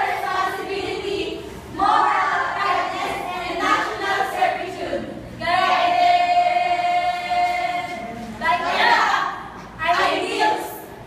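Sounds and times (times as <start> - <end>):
women singing unaccompanied: 0.0 - 10.9.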